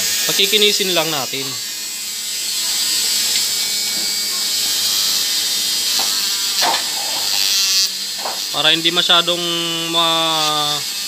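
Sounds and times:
rotary tool whirring: 0:00.0 - 0:09.3.

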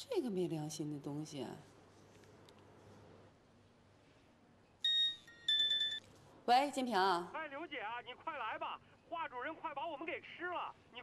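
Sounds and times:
mobile phone beep: 0:04.8 - 0:06.1.

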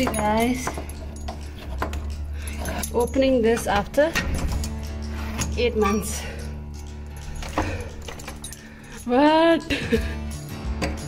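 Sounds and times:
metallic lock clicks: 0:00.0 - 0:08.7
keys jangling: 0:00.0 - 0:11.0.

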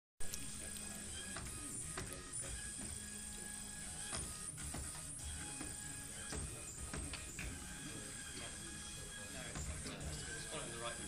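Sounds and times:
electric motors whining: 0:00.2 - 0:11.0.

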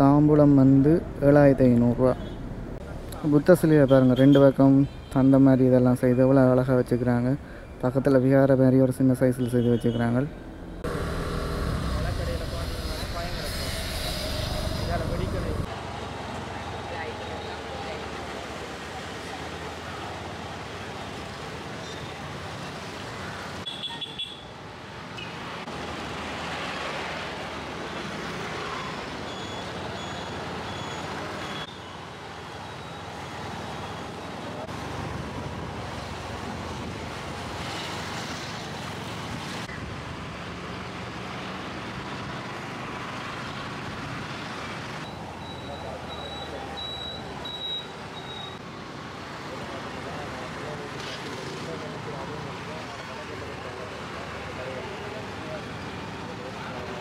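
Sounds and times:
motorcycles and traffic passing: 0:00.0 - 0:57.0
people's voices: 0:11.0 - 0:15.7.

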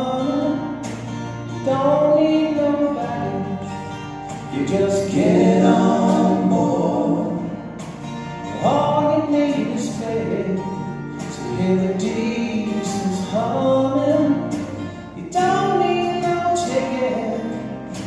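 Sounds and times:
acoustic guitars: 0:00.0 - 0:18.0
men singing in harmony: 0:04.5 - 0:07.8.

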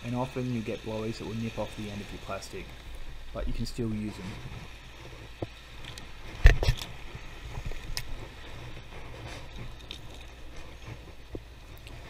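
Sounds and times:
sea washing over rocks: 0:00.0 - 0:12.0.

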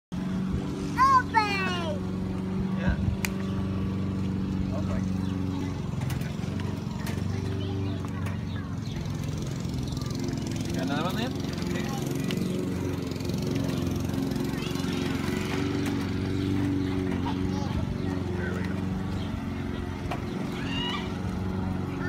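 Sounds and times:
small engine humming: 0:00.2 - 0:22.0
high-pitched squealing cry: 0:20.6 - 0:21.1.

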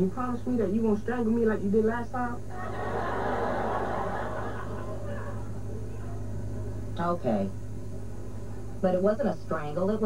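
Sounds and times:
studio audience laughing: 0:02.5 - 0:05.6.

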